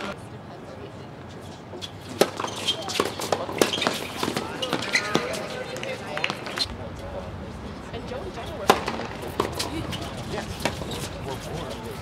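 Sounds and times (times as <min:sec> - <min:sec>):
rackets hitting tennis balls: 0:01.8 - 0:06.7, 0:08.6 - 0:12.0.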